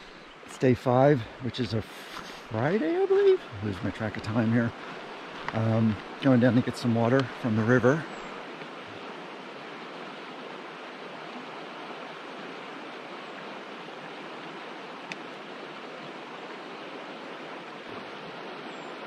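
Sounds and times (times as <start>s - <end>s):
river flowing over stones: 0.0s - 19.0s.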